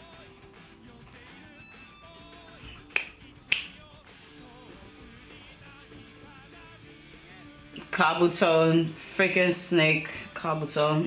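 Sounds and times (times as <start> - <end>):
rock music: 0.0 - 9.1
finger snaps: 2.6 - 3.8.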